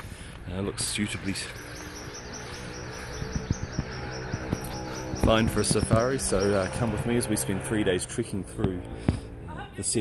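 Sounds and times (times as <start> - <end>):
insects chirping: 1.5 - 7.2.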